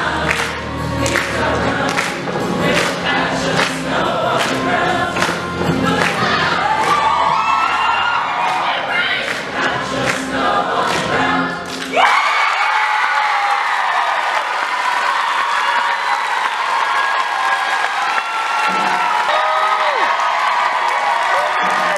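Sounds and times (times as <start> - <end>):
choir singing: 0.0 - 12.0
audience applause and cheering: 0.0 - 21.9.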